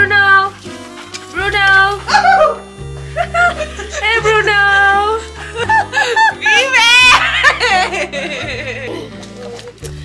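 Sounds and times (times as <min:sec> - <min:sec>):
background music: 0:00.0 - 0:10.0
dog whining and yipping: 0:01.7 - 0:02.8.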